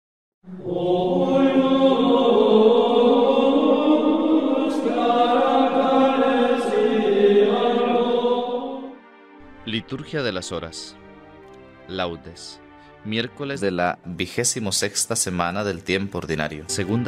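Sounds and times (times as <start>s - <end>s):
voices chanting sustained notes: 0.4s - 11.2s.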